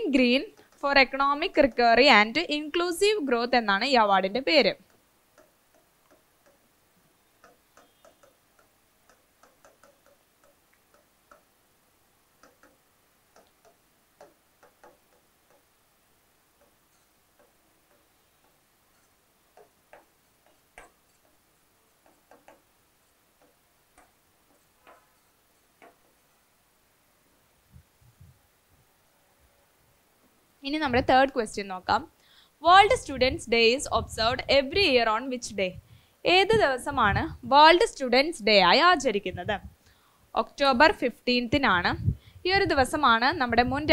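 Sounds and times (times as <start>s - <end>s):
pen tapping on glass screen: 0.2s - 2.1s, 4.8s - 6.7s, 7.4s - 11.6s, 12.4s - 15.8s, 16.5s - 26.3s.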